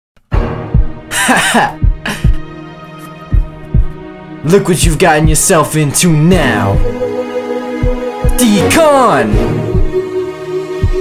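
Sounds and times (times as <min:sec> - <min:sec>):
deep kick drum hits: 0:00.6 - 0:01.0.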